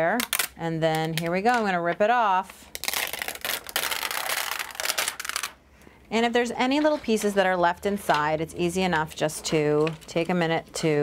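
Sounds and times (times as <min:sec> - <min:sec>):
plastic film peeling off: 0:02.7 - 0:05.6.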